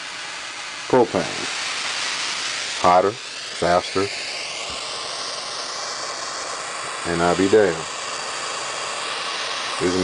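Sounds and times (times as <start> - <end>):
propane torch hissing: 0.0 - 10.0.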